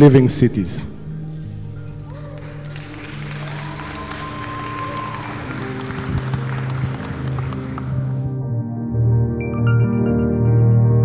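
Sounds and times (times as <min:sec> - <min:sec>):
slow music with low notes: 0:00.0 - 0:11.0
audience applauding: 0:01.4 - 0:08.4.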